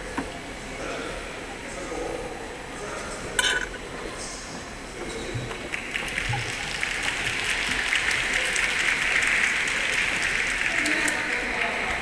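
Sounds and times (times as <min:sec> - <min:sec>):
audience applauding: 0:05.6 - 0:12.0.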